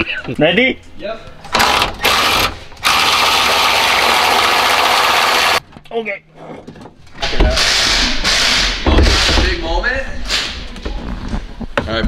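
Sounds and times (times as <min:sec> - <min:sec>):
power tool running: 0:01.6 - 0:05.6.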